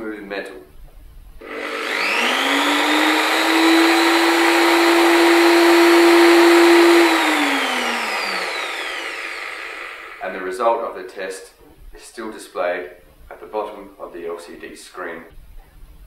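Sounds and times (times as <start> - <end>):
electric drill motor whine: 1.4 - 10.3.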